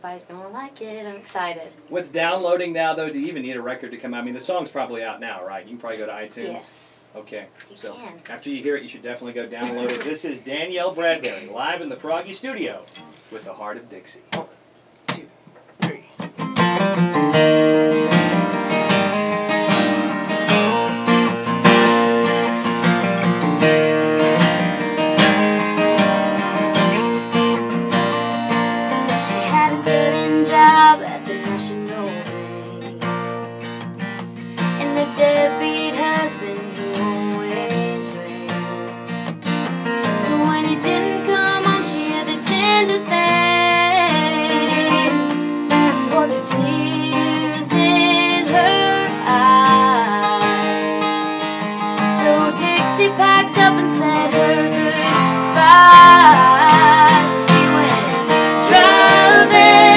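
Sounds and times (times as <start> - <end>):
acoustic guitar strumming: 9.4 - 13.7, 14.3 - 59.9
woman singing: 29.1 - 33.2, 34.8 - 39.0, 40.1 - 51.3, 52.0 - 59.9.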